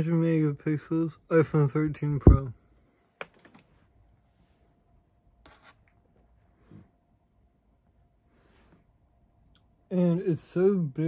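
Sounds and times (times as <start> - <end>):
soft low thump: 2.2 - 2.5.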